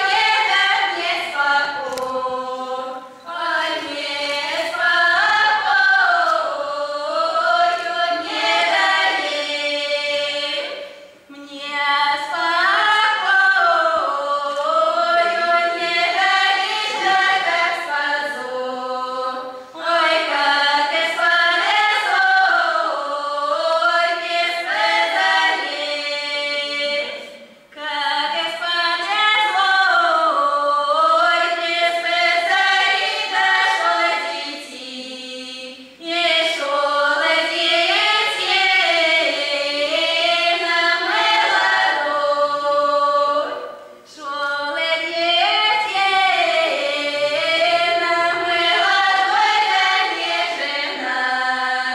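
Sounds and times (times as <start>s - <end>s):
girls singing a cappella: 0.0s - 51.9s.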